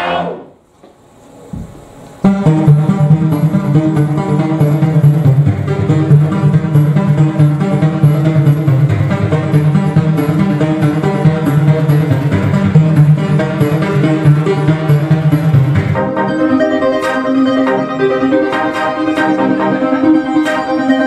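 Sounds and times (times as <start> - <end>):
electronic techno music: 2.2 - 21.0.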